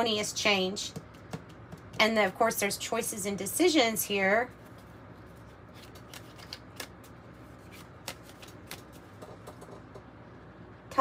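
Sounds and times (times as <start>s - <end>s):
cards being shuffled: 4.6s - 9.4s.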